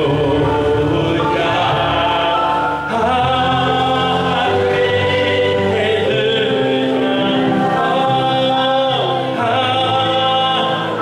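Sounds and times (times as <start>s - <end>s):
electronic keyboard chords: 0.0s - 11.0s
man singing: 0.0s - 11.0s.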